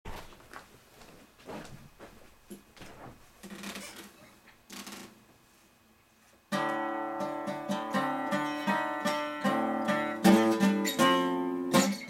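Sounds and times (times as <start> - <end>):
guitar handling brushes: 6.5 - 12.0.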